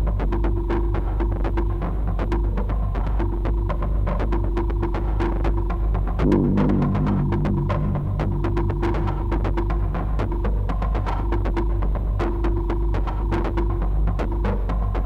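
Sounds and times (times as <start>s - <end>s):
industrial electronic music: 6.2s - 11.0s.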